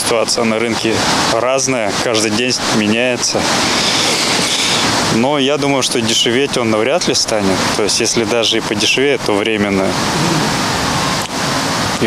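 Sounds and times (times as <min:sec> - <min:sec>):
loud rushing hiss: 0:00.8 - 0:06.5.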